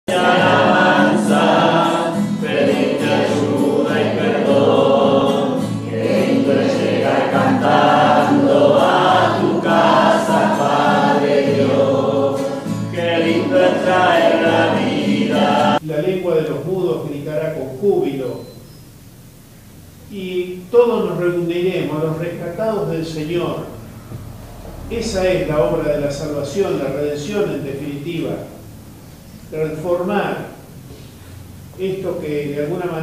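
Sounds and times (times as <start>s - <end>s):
group singing a hymn: 0.1s - 15.8s.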